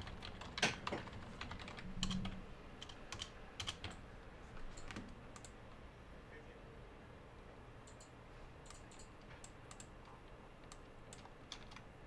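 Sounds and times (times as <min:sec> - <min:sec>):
typing on computer keyboard: 0:00.0 - 0:04.0, 0:10.6 - 0:11.9.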